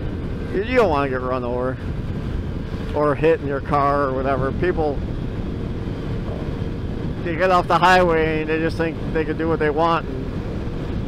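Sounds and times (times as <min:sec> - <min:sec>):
motorcycle engine drone: 0:00.0 - 0:11.0
wind noise on microphone: 0:00.0 - 0:11.0.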